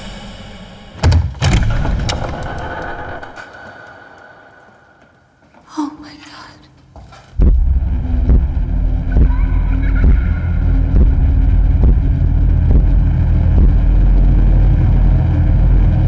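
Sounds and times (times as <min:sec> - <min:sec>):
heavy booming hits: 0:00.9 - 0:02.5
deep sustained rumble: 0:07.4 - 0:16.0.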